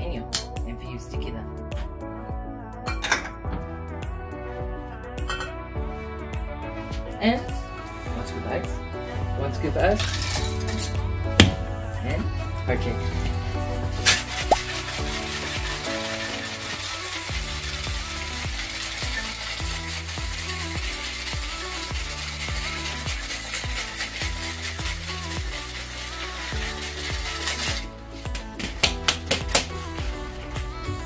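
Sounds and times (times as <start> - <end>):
background music: 0.0 - 31.0
ice rattling in cocktail shaker: 9.9 - 10.9, 14.0 - 30.5.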